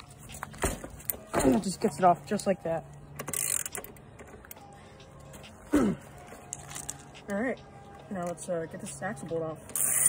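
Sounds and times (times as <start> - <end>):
wrench scraping: 3.2 - 4.0.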